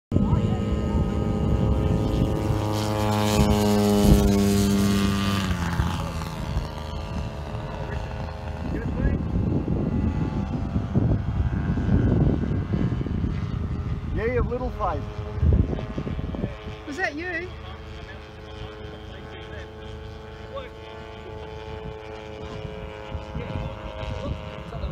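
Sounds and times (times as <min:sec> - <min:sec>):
model plane engine and propeller: 0:00.1 - 0:24.9.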